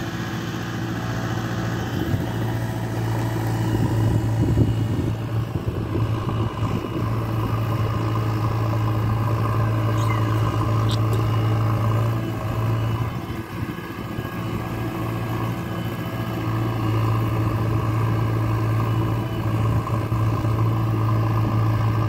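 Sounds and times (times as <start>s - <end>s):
diesel engine running: 0.0s - 22.0s.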